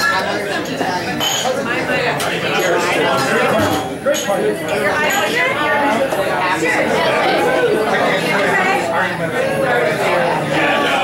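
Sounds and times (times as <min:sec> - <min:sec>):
crowd talking in bar: 0:00.0 - 0:11.0.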